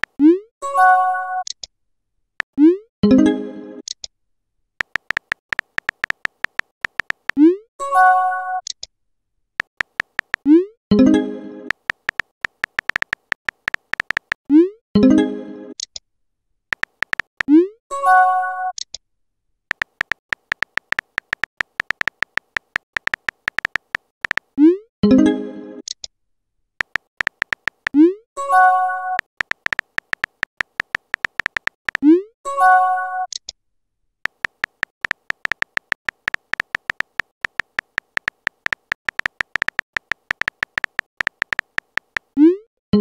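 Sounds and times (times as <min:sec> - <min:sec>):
keyboard typing clicks: 0:04.8 - 0:07.4, 0:09.6 - 0:10.5, 0:11.7 - 0:14.4, 0:16.7 - 0:17.5, 0:19.7 - 0:24.5, 0:26.8 - 0:28.0, 0:29.2 - 0:32.1, 0:34.3 - 0:42.4.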